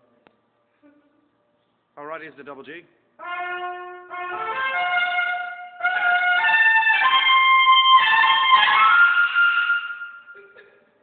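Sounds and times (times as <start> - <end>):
trumpet high notes: 3.2 - 10.4.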